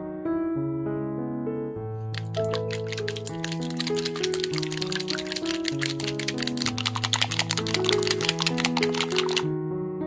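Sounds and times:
whisk clicking against glass bowl: 2.2 - 9.5.

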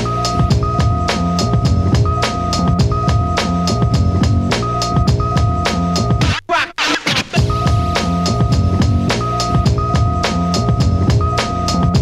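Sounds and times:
breakbeat drum loop with bassline: 0.0 - 12.0
turntable scratching: 0.0 - 12.0.

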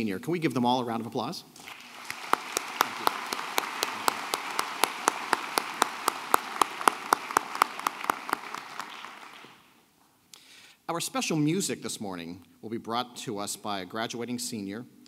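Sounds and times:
audience applauding: 1.6 - 9.7
close sharp claps: 1.6 - 9.8.

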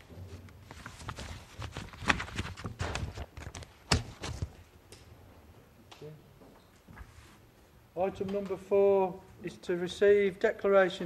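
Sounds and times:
paper rustling: 0.0 - 4.6.

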